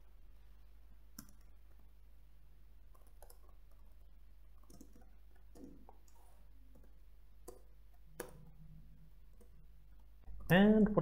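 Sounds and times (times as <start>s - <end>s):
low steady hum: 0.0s - 11.0s
keyboard keystrokes: 4.6s - 5.9s.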